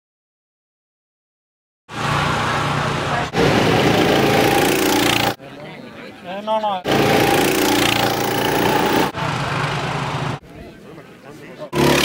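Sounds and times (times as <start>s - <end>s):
go-kart engines running: 1.9s - 5.4s, 6.8s - 10.4s, 11.7s - 12.0s.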